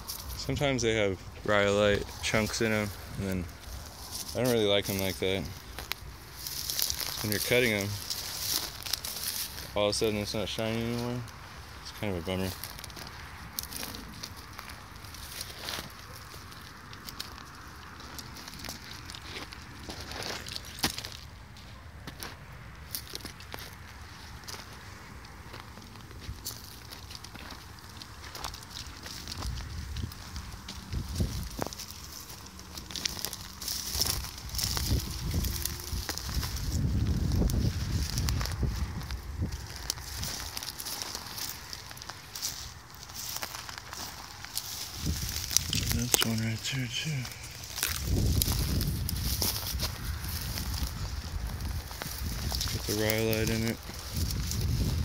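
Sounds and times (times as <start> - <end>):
footsteps on dry grass and stones: 0.0 - 55.0.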